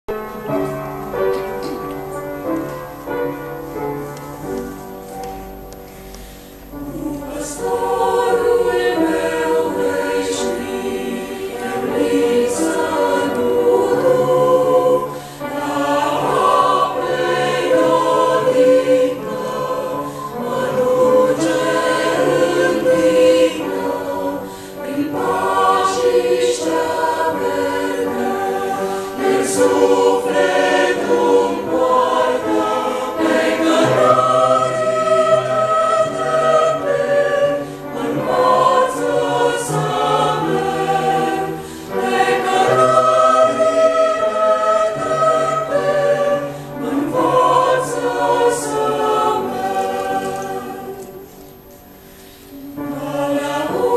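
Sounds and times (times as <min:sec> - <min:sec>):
choir singing a hymn: 0:00.1 - 0:53.9.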